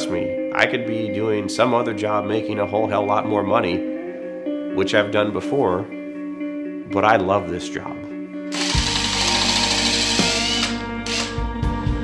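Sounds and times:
background music: 0:00.0 - 0:12.0
power drill boring into wood: 0:08.5 - 0:11.4.

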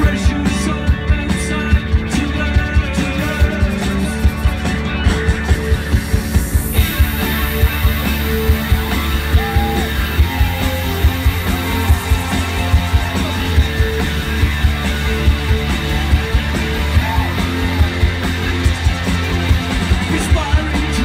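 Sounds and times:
bass guitar: 0:00.0 - 0:21.0
drum kit beat: 0:00.0 - 0:21.0
electric guitar: 0:00.0 - 0:21.0.

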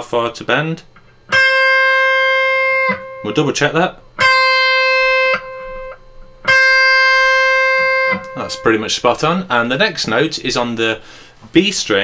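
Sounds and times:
electric guitar single notes: 0:00.8 - 0:10.3.

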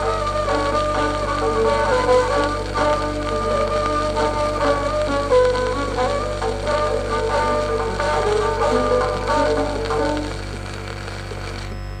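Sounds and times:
violin melody: 0:00.0 - 0:10.3
piano accompaniment: 0:00.0 - 0:10.4
record hum and surface noise: 0:00.0 - 0:12.0.

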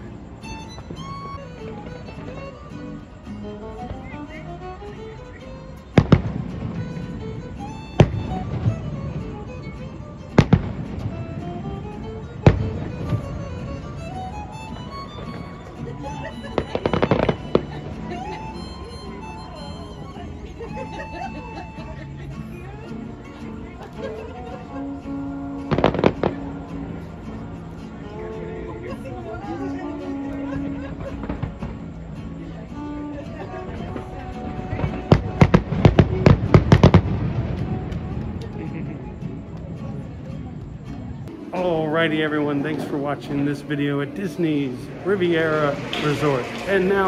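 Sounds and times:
music: 0:00.0 - 0:47.0
fireworks bangs: 0:06.0 - 0:07.1, 0:07.7 - 0:09.2, 0:10.4 - 0:11.6, 0:12.3 - 0:14.0, 0:16.4 - 0:18.3, 0:25.7 - 0:26.6, 0:34.7 - 0:38.3, 0:42.0 - 0:47.0.

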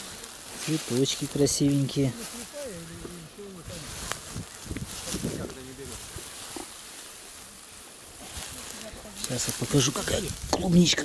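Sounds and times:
steady meadow hiss: 0:00.0 - 0:11.0.

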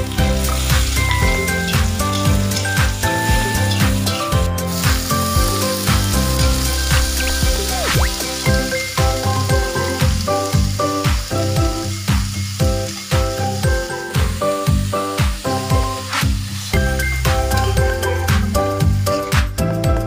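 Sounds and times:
background music with beat: 0:00.0 - 0:20.0
spices sizzling in a wok: 0:00.0 - 0:20.0
metal spatula stirring: 0:00.2 - 0:05.2.

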